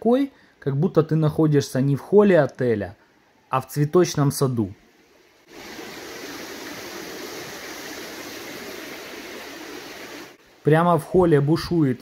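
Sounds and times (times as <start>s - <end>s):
fountain water falling into pool: 5.5s - 10.4s.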